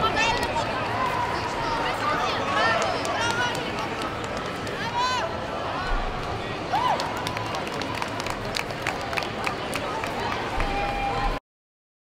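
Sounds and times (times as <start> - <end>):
babble of many voices: 0.0 - 11.4.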